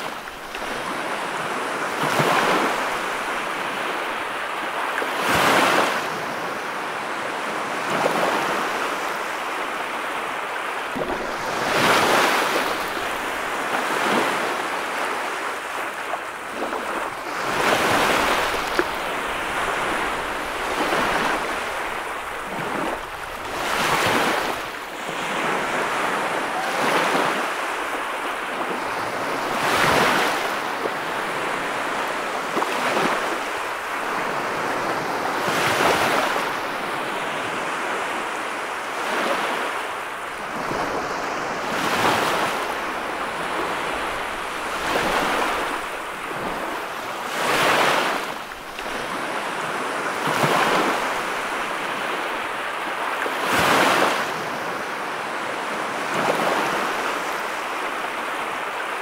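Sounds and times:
waves breaking on a beach: 0.0 - 59.0.

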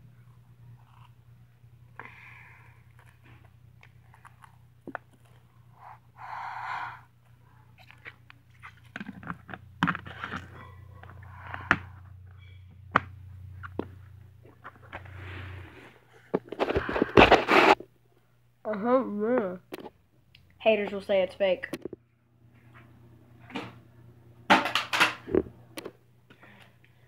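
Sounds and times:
low steady hum: 0.0 - 27.0
crunching cheese balls: 2.8 - 5.7.

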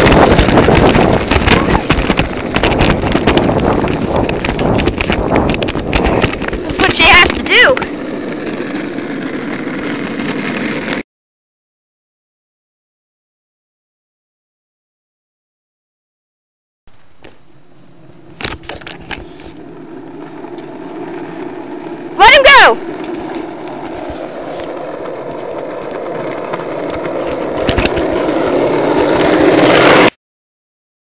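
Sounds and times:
go-kart wheels rolling on asphalt: 0.0 - 11.0, 17.8 - 30.1
child shouting: 6.9 - 7.8, 22.2 - 22.8.

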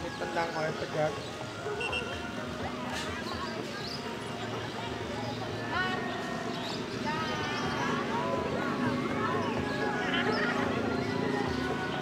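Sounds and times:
faint chatter of voices: 0.0 - 12.0
faint music: 0.0 - 12.0.

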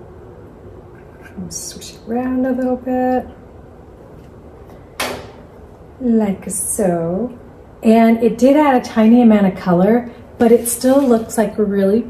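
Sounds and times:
sharp knock of hard object: 5.0 - 5.4.

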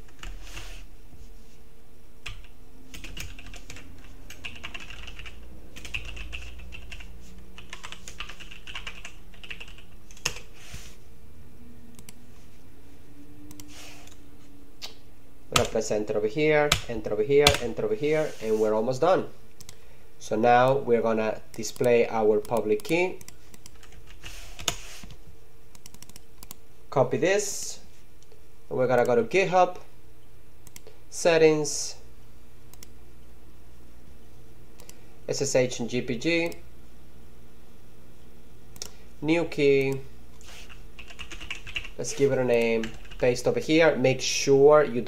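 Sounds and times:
typing on computer keyboard: 2.3 - 10.5, 22.5 - 24.8, 25.8 - 26.6, 41.0 - 43.2
mouse and keyboard clicks: 25.7 - 26.6.

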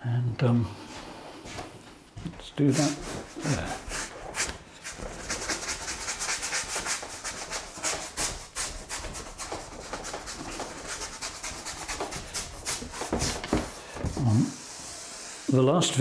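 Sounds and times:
bristle brush scrubbing paint on wood: 2.7 - 16.0.

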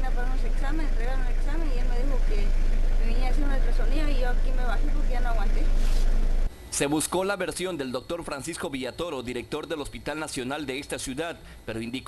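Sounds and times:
woman speaking: 0.0 - 6.0
loud steady low hum: 0.0 - 12.0.

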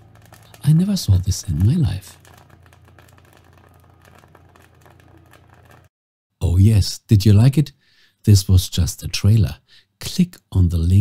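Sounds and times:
cloves crackling and popping: 0.0 - 5.9.

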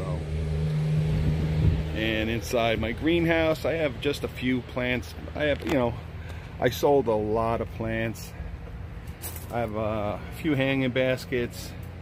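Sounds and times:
low engine-like hum: 0.0 - 12.0.

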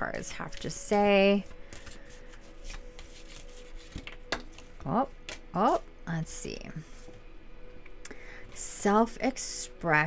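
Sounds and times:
cards shuffling: 1.7 - 5.8.

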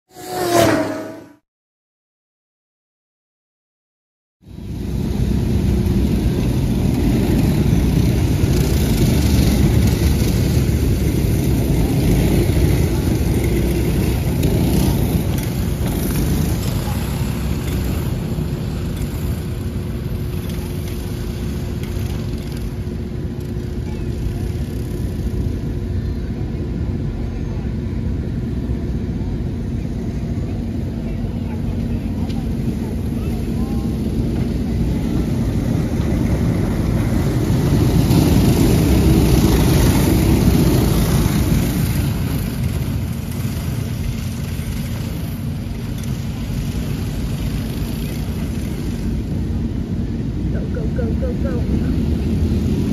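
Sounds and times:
go-kart engines droning: 0.1 - 1.4, 4.5 - 52.9.

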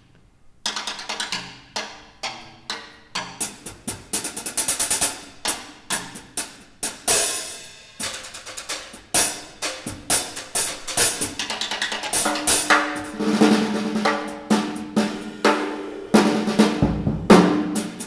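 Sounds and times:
drum kit played with sticks: 0.7 - 18.0.

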